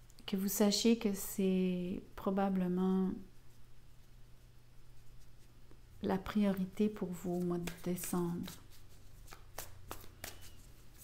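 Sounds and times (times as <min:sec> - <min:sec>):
cards being shuffled: 0:07.2 - 0:11.0.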